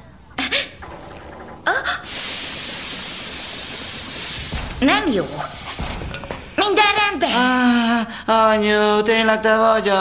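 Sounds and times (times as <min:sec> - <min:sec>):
steady hiss: 0:02.0 - 0:06.8.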